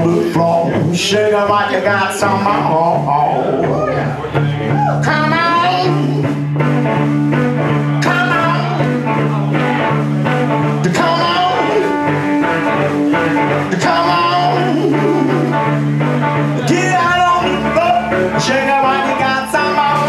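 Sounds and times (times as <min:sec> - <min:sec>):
blues guitar: 0:00.0 - 0:20.0
drum kit beat: 0:00.0 - 0:20.0
upright double bass: 0:00.0 - 0:20.0.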